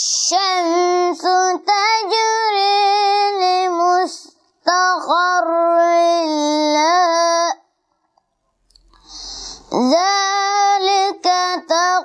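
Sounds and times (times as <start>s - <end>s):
boy chanting recitation: 0.0s - 7.7s, 9.0s - 12.0s.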